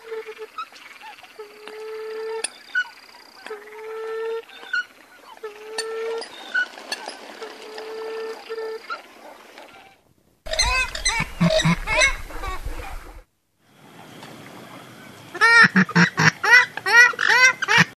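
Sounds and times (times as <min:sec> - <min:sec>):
swamphens calling: 0:10.5 - 0:13.2, 0:15.4 - 0:18.0.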